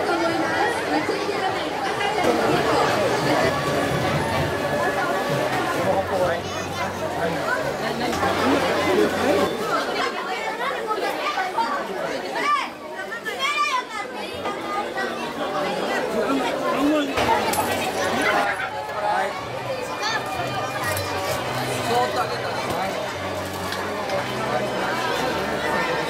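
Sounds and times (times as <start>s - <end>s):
chatter of adults and children: 0.0s - 26.0s.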